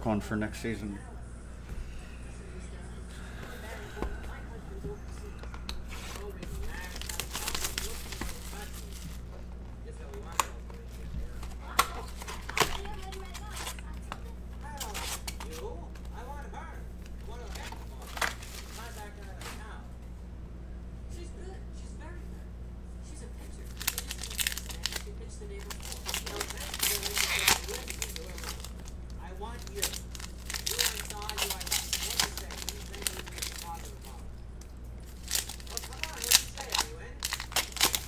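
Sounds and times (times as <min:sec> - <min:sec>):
foil packs crinkling and rustling: 0:05.8 - 0:09.3, 0:10.3 - 0:16.1, 0:17.0 - 0:19.6, 0:23.6 - 0:34.2, 0:35.0 - 0:38.0.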